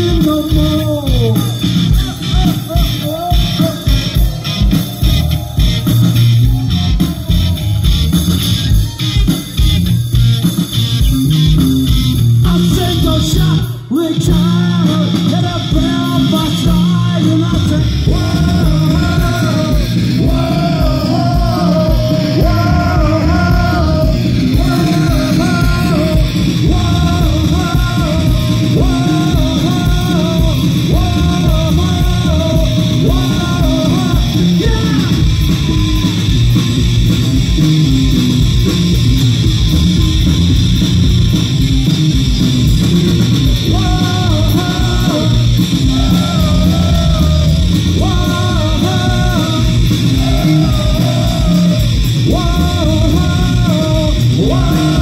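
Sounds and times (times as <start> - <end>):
punk rock band playing: 0.0 - 55.0.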